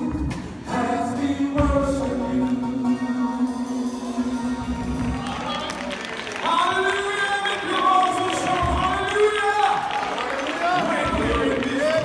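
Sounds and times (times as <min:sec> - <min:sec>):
men singing gospel: 0:00.0 - 0:05.2, 0:10.6 - 0:12.0.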